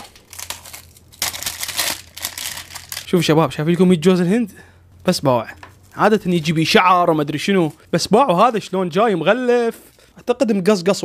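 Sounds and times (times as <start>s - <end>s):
plastic wrapping crinkling and tearing: 0.0s - 3.2s, 5.7s - 7.0s.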